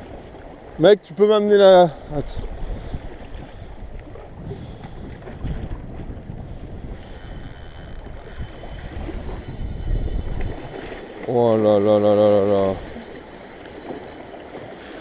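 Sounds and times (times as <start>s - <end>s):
wind buffeting microphone: 2.0s - 15.0s
sea water washing against rocks: 6.2s - 15.0s.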